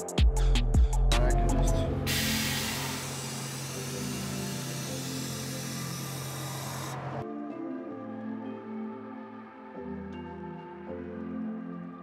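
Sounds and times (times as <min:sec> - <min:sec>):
background music: 0:00.0 - 0:12.0
air suspension hissing: 0:02.1 - 0:07.2.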